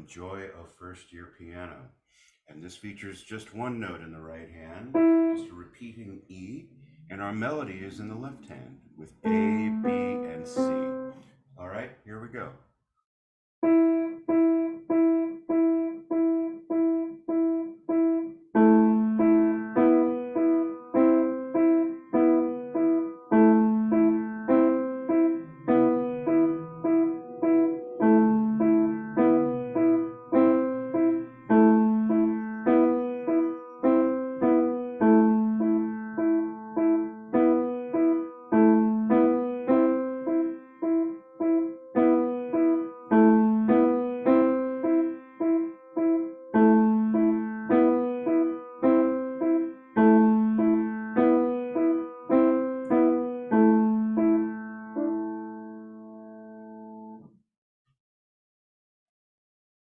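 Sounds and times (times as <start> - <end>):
slow grand piano piece: 4.6 - 5.7, 9.2 - 11.3, 13.6 - 57.3.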